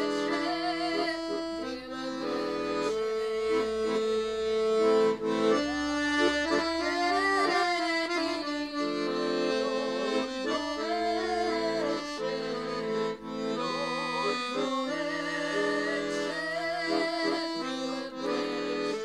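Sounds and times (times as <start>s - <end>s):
piano accordion playing folk tune: 0.0s - 19.0s.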